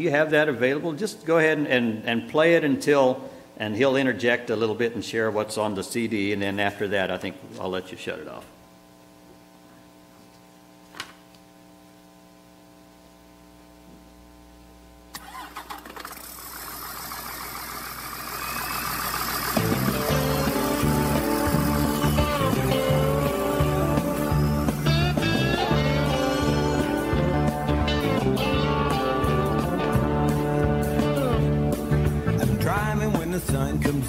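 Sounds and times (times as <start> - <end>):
low steady hum: 0.0 - 34.0
recorded vehicle engine running: 16.1 - 32.6
band with bass and guitar: 18.4 - 34.0.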